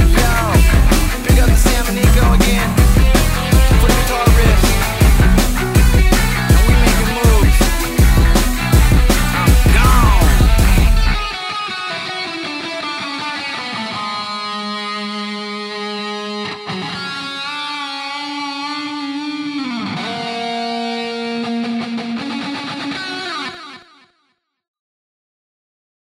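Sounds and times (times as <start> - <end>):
electric guitar riff: 0.0 - 24.1.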